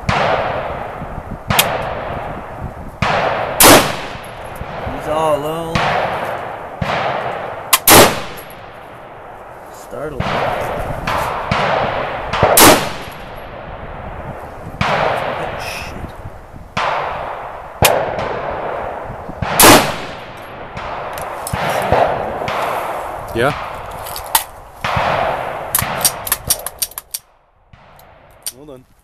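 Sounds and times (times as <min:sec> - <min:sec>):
rifle shots with rolling echo: 0:00.0 - 0:16.0, 0:16.8 - 0:28.4.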